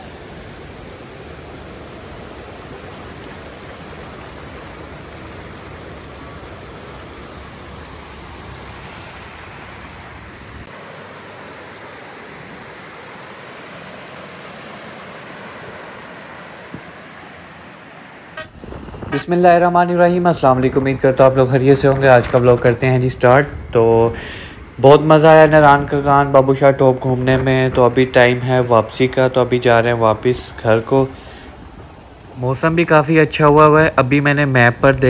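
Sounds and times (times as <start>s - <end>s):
stream rushing over boulders: 0.0s - 35.0s.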